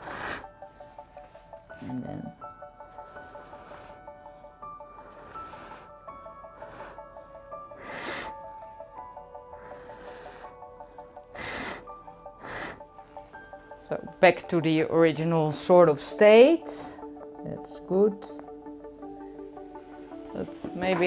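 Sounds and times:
breathy puffs of air blown: 0:00.0 - 0:01.4, 0:04.8 - 0:08.8, 0:09.4 - 0:13.6
soft background music: 0:00.0 - 0:21.0.

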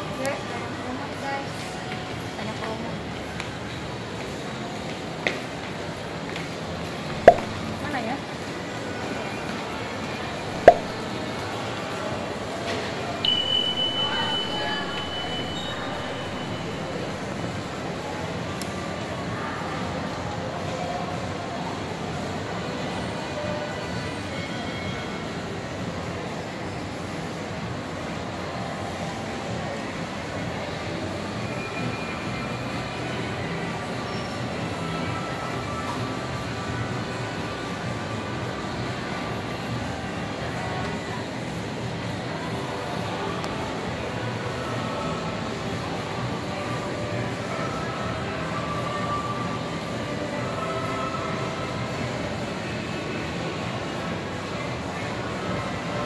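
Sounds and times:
shopping mall rumble: 0:00.0 - 0:56.0
faint wavering tones: 0:13.2 - 0:18.0.

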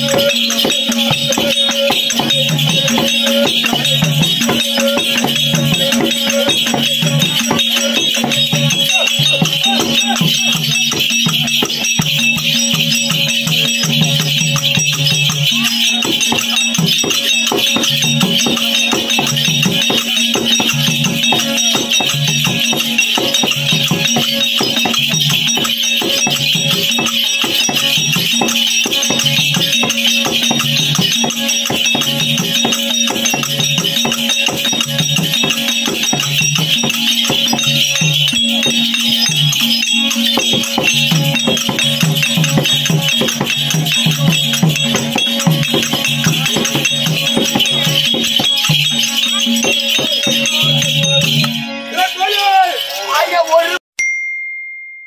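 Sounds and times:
jingling bells: 0:00.0 - 0:55.0.

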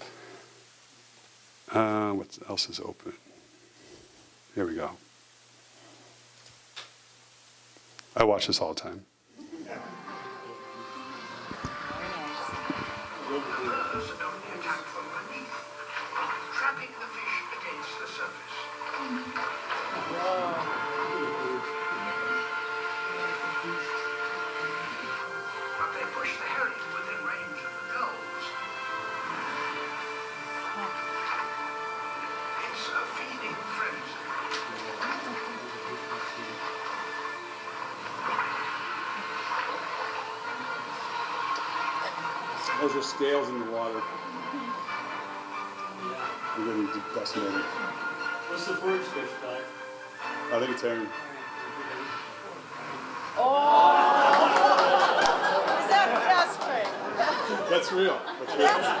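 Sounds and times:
documentary music over speakers: 0:10.0 - 0:53.4.

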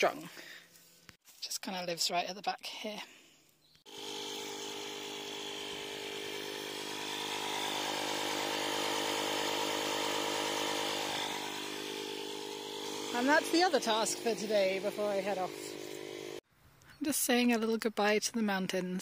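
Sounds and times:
electric tyre inflator running: 0:03.9 - 0:16.4.

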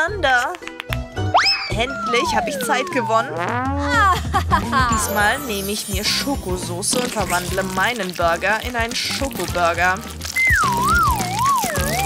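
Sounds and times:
background music: 0:00.0 - 0:12.0
wavering whistle-like tone sliding down: 0:01.3 - 0:03.4
higher wavering tone: 0:01.4 - 0:03.5.

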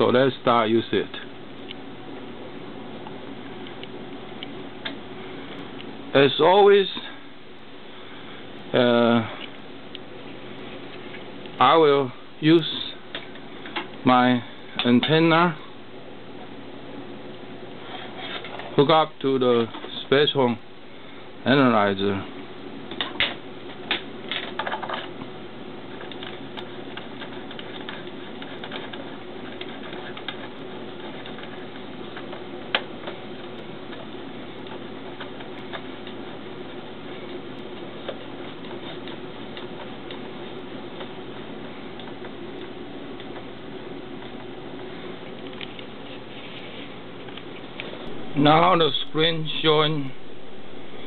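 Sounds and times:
test equipment hum: 0:00.0 - 0:51.0.

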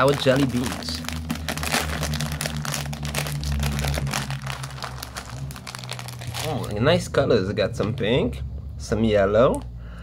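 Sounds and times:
plastic bag crinkling: 0:00.0 - 0:07.1
low steady hum: 0:00.0 - 0:10.0.

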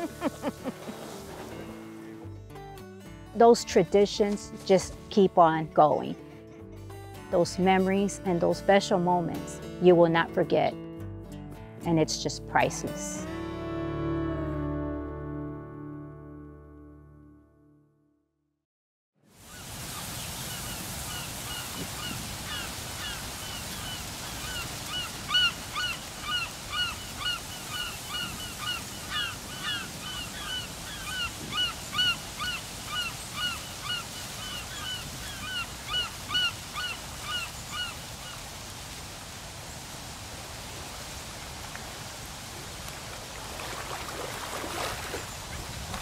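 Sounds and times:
hiss of wind or surf: 0:00.0 - 0:02.2, 0:19.3 - 0:46.0
waterbird calling: 0:19.5 - 0:38.7, 0:43.2 - 0:46.0.

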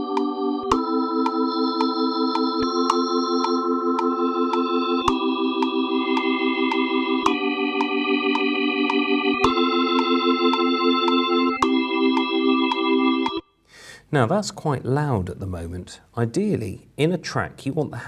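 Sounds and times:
organ chords: 0:00.0 - 0:13.6.

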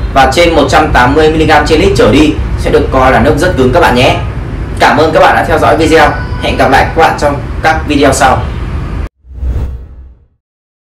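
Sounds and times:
deep whoosh sound effect: 0:08.5 - 0:10.3.

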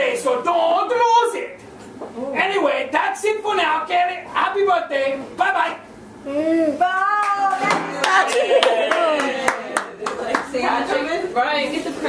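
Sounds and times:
voices calling out and cheering: 0:06.3 - 0:11.2
people clapping: 0:07.1 - 0:10.8.

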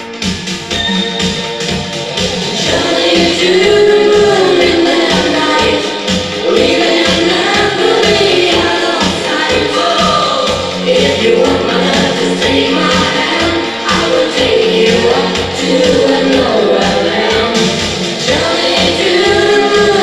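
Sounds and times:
dance music with sung vocals: 0:00.0 - 0:20.0.

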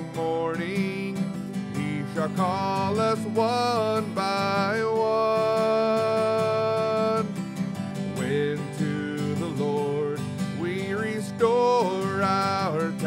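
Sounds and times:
acoustic guitar strumming: 0:00.0 - 0:13.0
man singing a hymn: 0:00.0 - 0:13.0.

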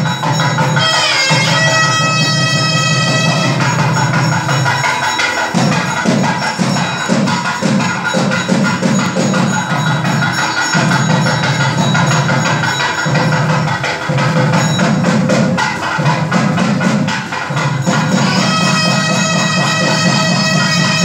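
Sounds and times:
festival drum music: 0:00.0 - 0:21.0.

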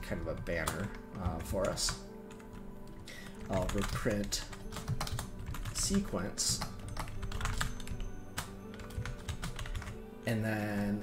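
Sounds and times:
keyboard typing: 0:00.0 - 0:10.0
background music: 0:00.0 - 0:11.0.

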